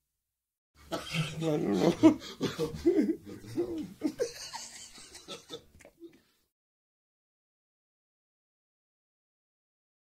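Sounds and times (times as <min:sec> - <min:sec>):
people talking: 0:01.0 - 0:04.6
laughter: 0:01.0 - 0:06.0.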